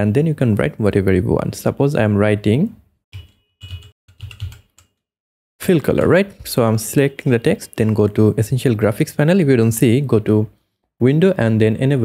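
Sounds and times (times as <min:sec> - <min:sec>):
typing on computer keyboard: 0:03.2 - 0:05.0.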